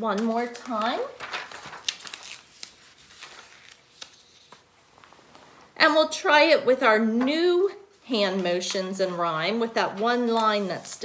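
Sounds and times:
paper rustling: 0.1 - 5.5, 9.9 - 11.0.

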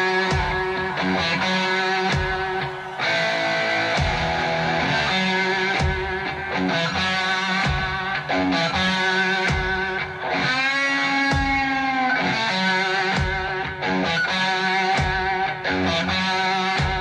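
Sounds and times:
slow drum beats: 0.0 - 12.4, 13.0 - 14.0, 14.9 - 15.6, 16.8 - 17.0
electric guitar lead line: 0.0 - 17.0
rock band playing slow blues: 0.0 - 17.0.

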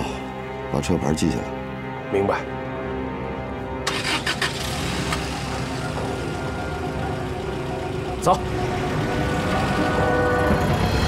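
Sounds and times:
dramatic background music: 0.0 - 11.0
jeep engine starting and running: 3.8 - 11.0.

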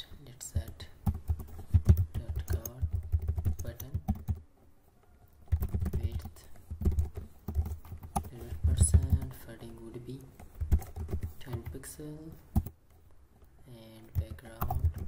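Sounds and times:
computer keyboard typing: 0.1 - 4.5, 5.2 - 12.8, 14.0 - 15.0.

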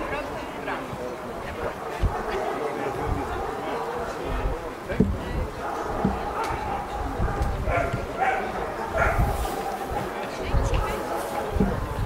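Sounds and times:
background talk: 0.0 - 12.0
dog barking: 1.5 - 12.0.

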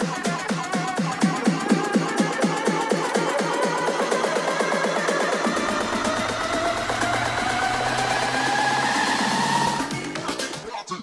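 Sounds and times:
electronic dance music beat: 0.0 - 11.0
synth tone rising in pitch: 5.4 - 10.1.

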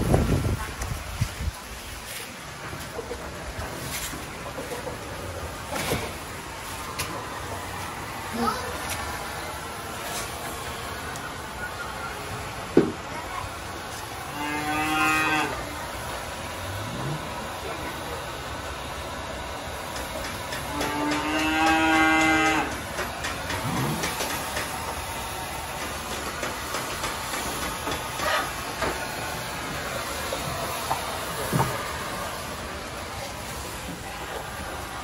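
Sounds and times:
thermal fogger running: 0.0 - 35.0
cow mooing: 14.3 - 15.6, 20.7 - 22.7.

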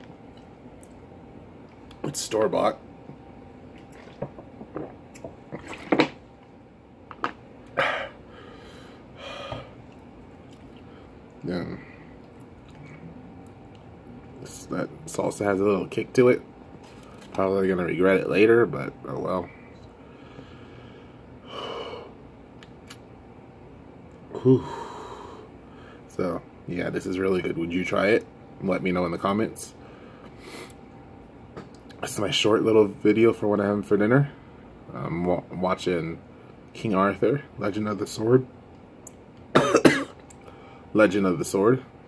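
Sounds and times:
man breathing out hard: 7.8 - 9.8.

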